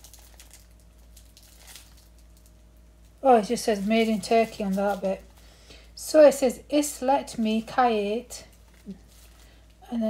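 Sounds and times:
plastic packet crinkling: 0.0 - 5.6, 8.4 - 9.8.

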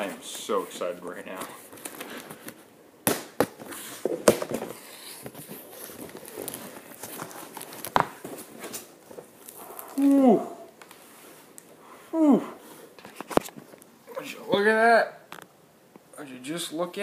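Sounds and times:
packing crinkling: 3.5 - 11.7
person exclaiming: 10.0 - 10.7, 12.1 - 12.6.

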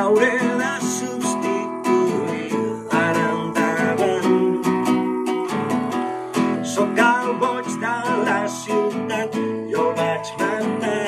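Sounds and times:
acoustic guitar strumming: 0.0 - 11.0
man singing: 0.0 - 11.0.

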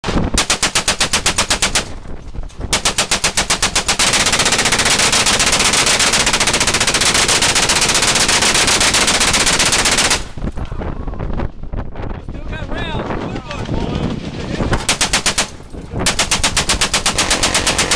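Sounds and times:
machine gun firing bursts: 0.0 - 1.9, 2.7 - 10.4, 14.0 - 17.9.

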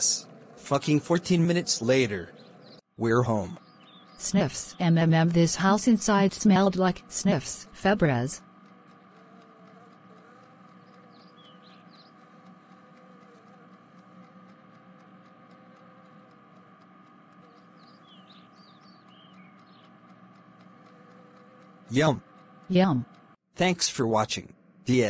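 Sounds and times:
low hum: 0.0 - 25.0.

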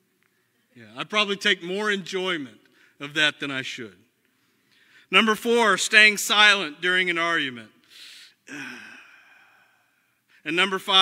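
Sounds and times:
man breathing in: 7.8 - 10.4
man sighing: 8.1 - 10.0.

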